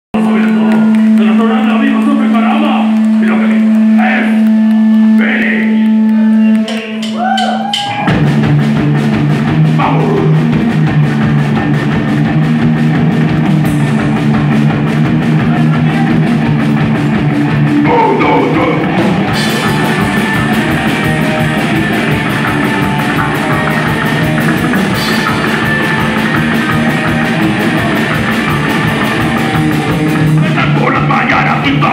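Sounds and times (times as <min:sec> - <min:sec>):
loud fast rock band: 0:00.2 - 0:31.9.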